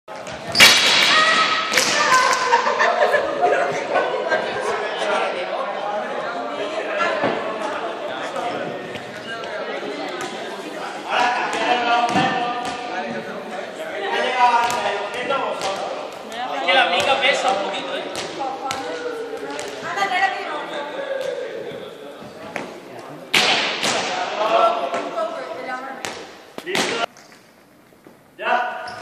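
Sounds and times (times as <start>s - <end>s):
voices in echoing hall: 0.1s - 29.0s
balls hitting floor: 11.5s - 12.9s.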